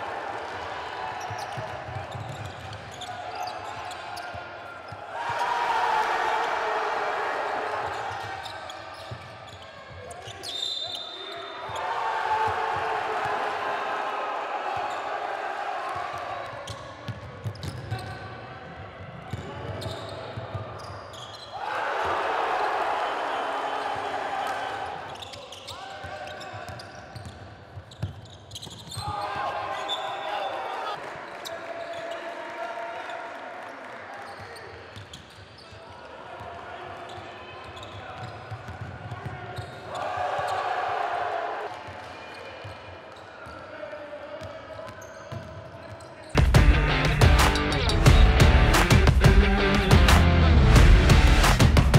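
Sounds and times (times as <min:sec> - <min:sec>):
sneaker squeaks: 0:01.2 - 0:05.1, 0:07.8 - 0:11.8, 0:16.5 - 0:18.4, 0:19.3 - 0:21.6, 0:25.0 - 0:30.5, 0:34.2 - 0:36.0, 0:37.0 - 0:40.8, 0:44.4 - 0:46.4.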